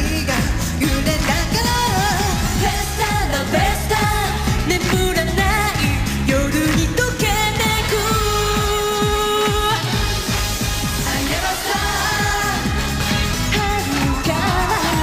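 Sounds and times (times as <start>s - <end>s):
dance-pop backing track: 0.0s - 15.0s
women singing pop: 0.0s - 15.0s.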